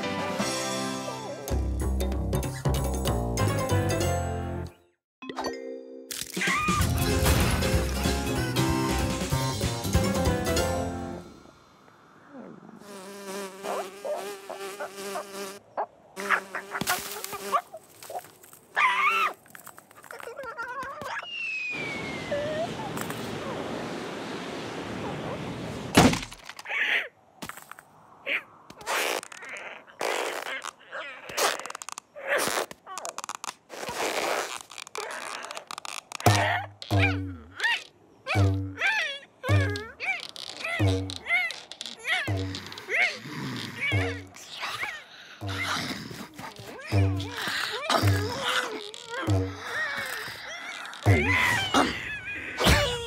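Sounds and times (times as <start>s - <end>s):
cartoon bee buzzing: 12.8s - 15.6s, 16.2s - 17.6s, 40.5s - 44.5s, 45.4s - 50.2s.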